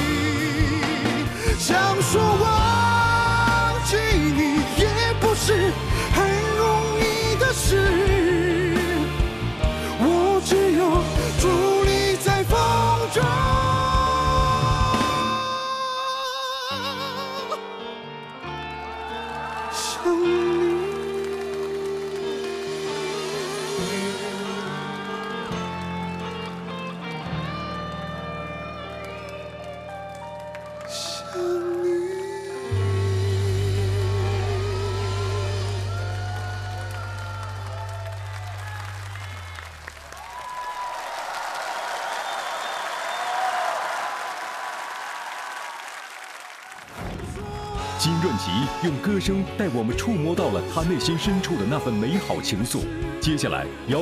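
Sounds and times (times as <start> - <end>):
live band sustained chords: 0.0 - 40.6
man singing a long note: 9.9 - 18.1, 19.5 - 25.4, 30.9 - 37.7, 47.2 - 54.0
audience applauding: 16.5 - 32.8, 34.9 - 49.1.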